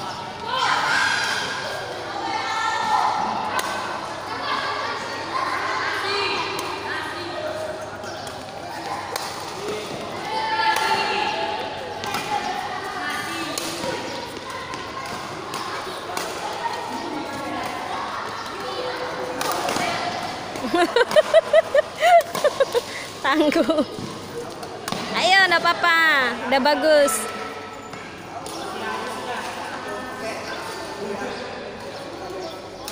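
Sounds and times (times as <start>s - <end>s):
loud pulsing voices: 0.0s - 32.9s
voices in a hall: 0.0s - 32.9s
racket hitting shuttlecock: 19.2s - 21.3s, 24.0s - 25.2s.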